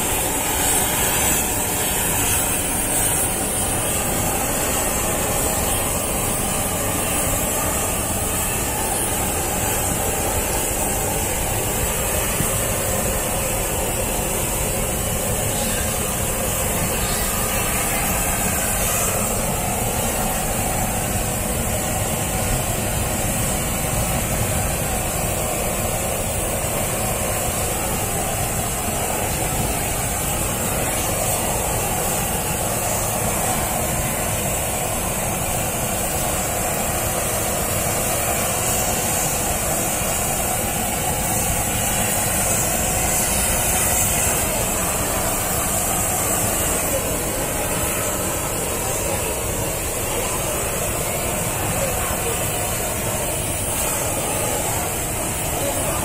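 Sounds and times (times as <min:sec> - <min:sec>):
gas blowtorch burning: 0:00.0 - 0:56.0.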